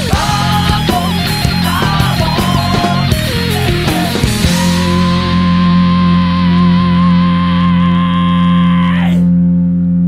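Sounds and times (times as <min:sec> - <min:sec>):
high guitar note with vibrato: 0:00.0 - 0:07.5
distorted electric guitar chord: 0:00.0 - 0:10.0.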